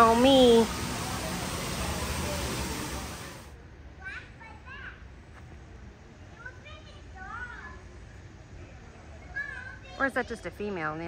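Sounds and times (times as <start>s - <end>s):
steady rushing hiss: 0.0s - 4.1s
children's voices: 9.2s - 10.2s.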